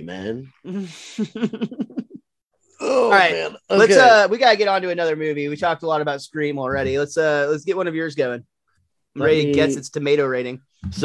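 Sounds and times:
man laughing: 0:00.7 - 0:02.2.

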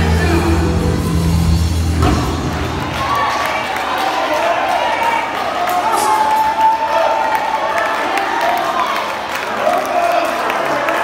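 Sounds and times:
gospel band held chord: 0:00.0 - 0:03.1
steady bass line: 0:00.0 - 0:03.4.

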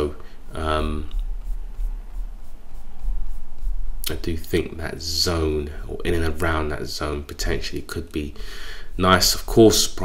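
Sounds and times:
low rumble: 0:01.0 - 0:06.5.

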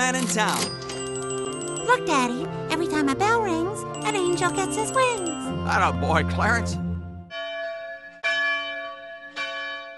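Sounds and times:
large church bell tolling: 0:07.3 - 0:09.9.

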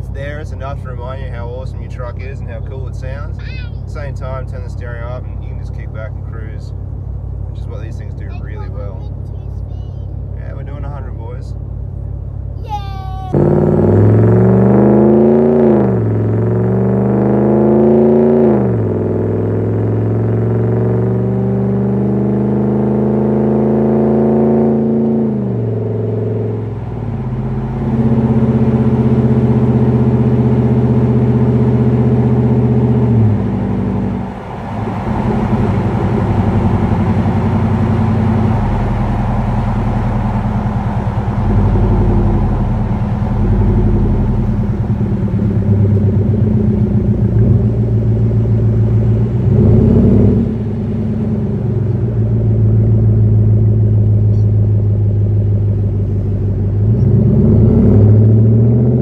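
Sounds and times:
truck exhaust accelerating: 0:00.0 - 0:59.0.

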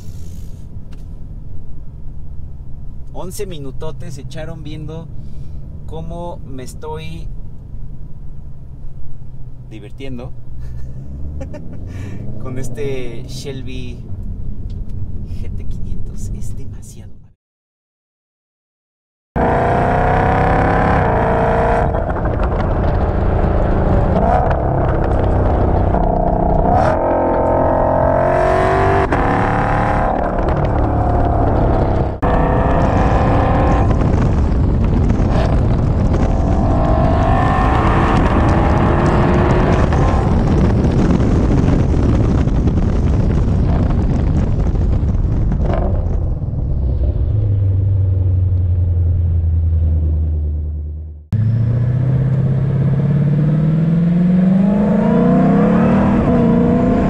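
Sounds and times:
car engine accelerating hard: 0:10.6 - 0:13.3, 0:19.4 - 0:44.4, 0:46.8 - 0:57.0.

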